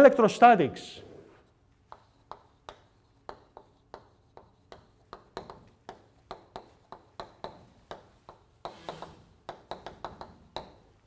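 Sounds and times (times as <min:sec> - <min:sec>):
chalk scratching stroke: 0:01.3 - 0:09.1
chalk tapping on blackboard: 0:01.4 - 0:11.0.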